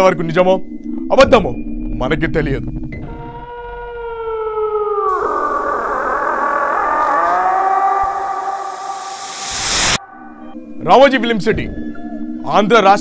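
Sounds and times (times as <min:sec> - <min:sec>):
wailing siren-like tone sliding down: 0:03.0 - 0:10.6
rising tone: 0:03.7 - 0:10.8
hissing drone: 0:05.0 - 0:10.4.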